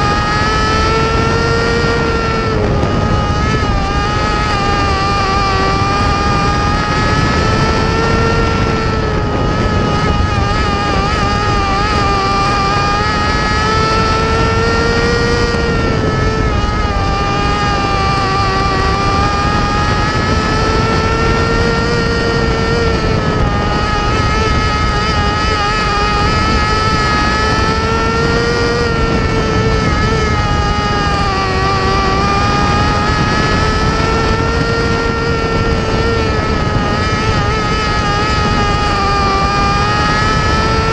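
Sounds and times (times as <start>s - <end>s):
race car engine at high revs: 0.0s - 40.9s.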